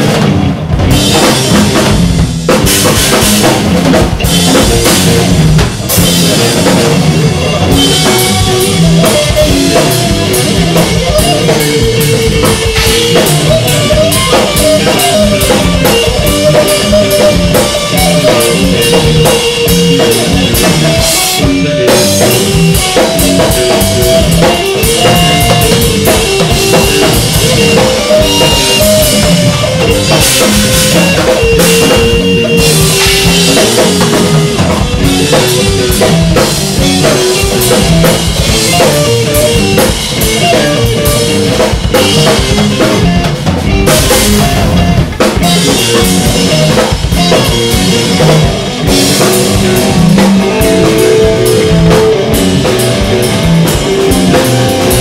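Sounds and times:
rock music with drums and guitar: 0:00.0 - 0:55.0.

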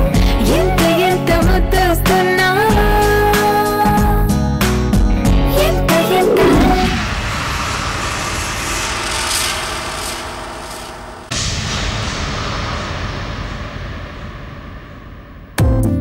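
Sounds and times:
falling swoosh: 0:05.9 - 0:11.7
long noisy whoosh: 0:06.0 - 0:15.3
sudden whoosh: 0:06.0 - 0:15.4.

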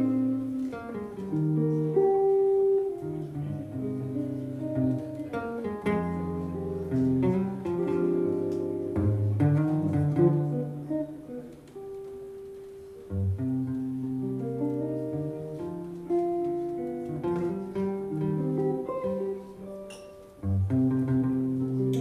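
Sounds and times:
jazz guitar duet: 0:00.0 - 0:22.0.

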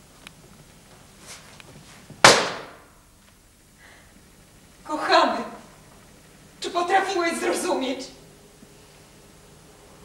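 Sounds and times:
sharp loud bang: 0:02.2 - 0:02.9.

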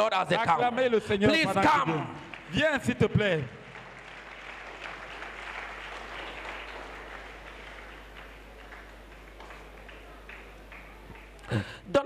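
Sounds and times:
congregation clapping: 0:01.3 - 0:11.8.

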